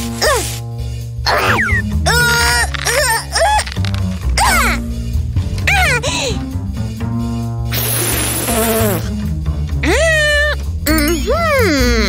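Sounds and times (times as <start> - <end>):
burst of hiss: 7.7 - 9.0
cartoon buzz: 7.7 - 9.1.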